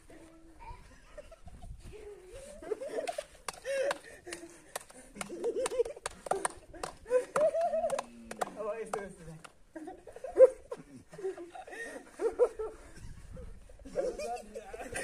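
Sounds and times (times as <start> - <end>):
young men laughing and calling out: 0.0 - 15.0
sharp hand claps: 3.4 - 9.6.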